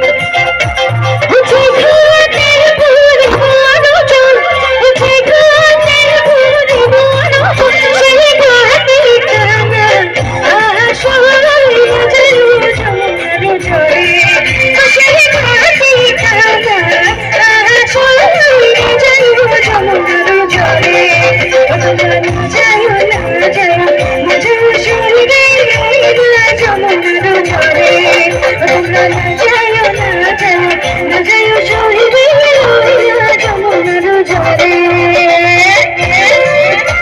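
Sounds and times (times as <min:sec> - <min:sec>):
electric guitar: 0:00.0 - 0:37.0
keyboard: 0:00.0 - 0:37.0
live band music: 0:00.0 - 0:37.0
woman singing into a microphone: 0:00.0 - 0:37.0
steady drum beat: 0:03.1 - 0:04.2.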